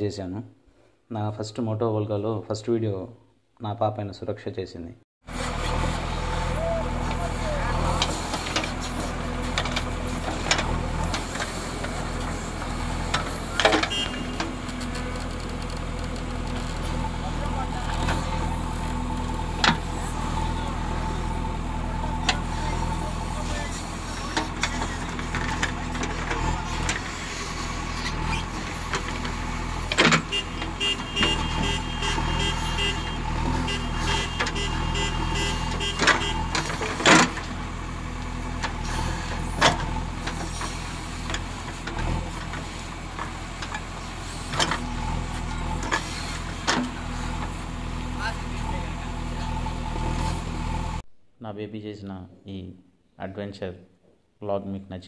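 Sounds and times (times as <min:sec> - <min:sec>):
diesel engine idling: 0:05.3 - 0:51.0.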